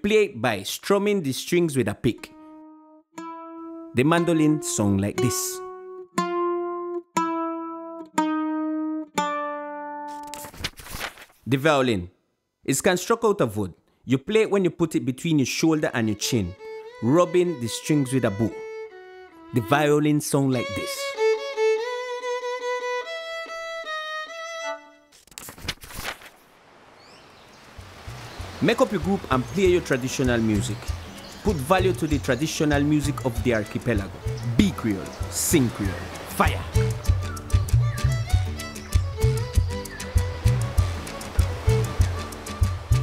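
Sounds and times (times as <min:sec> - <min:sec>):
mandolin plucked notes: 0:02.3 - 0:10.4, 0:30.3 - 0:43.0
solo violin bowed: 0:16.3 - 0:19.9, 0:20.5 - 0:25.1.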